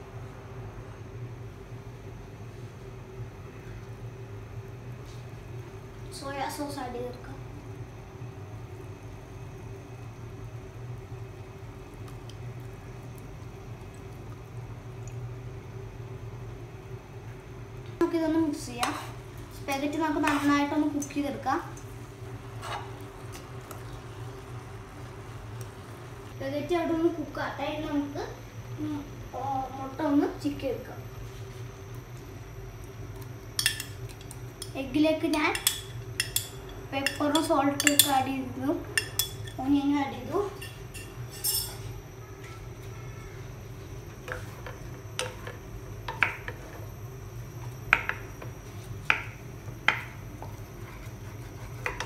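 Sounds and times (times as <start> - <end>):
steady low hum: 0.0 - 52.0
metal spoon clinking on dishes: 35.5 - 38.2, 40.6 - 41.8.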